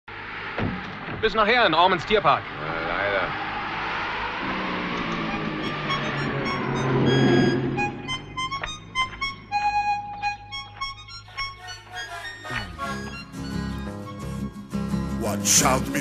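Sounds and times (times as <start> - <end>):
harmonica playing: 5.3 - 16.0.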